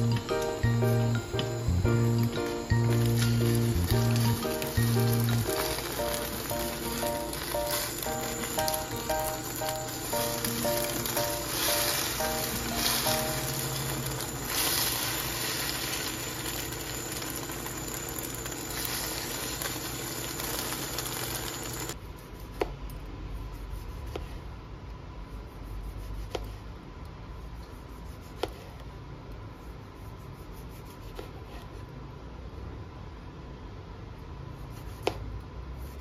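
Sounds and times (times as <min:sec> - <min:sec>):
background music: 0:00.0 - 0:14.2
eggs sizzling in frying pan: 0:00.0 - 0:22.0.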